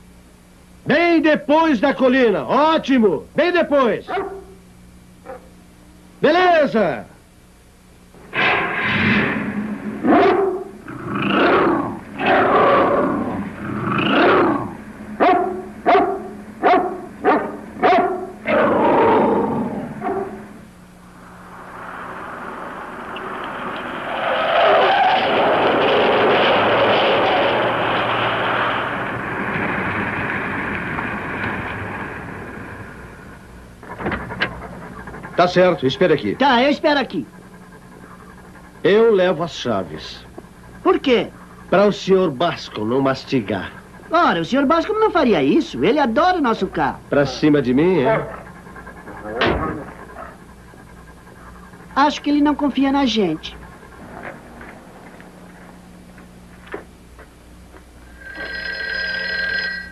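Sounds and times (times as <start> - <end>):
large dog barking: 4.1 - 4.6, 5.2 - 5.5, 10.0 - 20.6, 48.0 - 52.0
steady rushing noise: 19.6 - 37.2.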